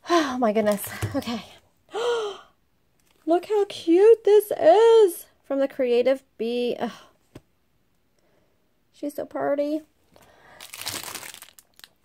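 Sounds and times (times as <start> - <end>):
plastic packaging crinkling: 10.2 - 12.0.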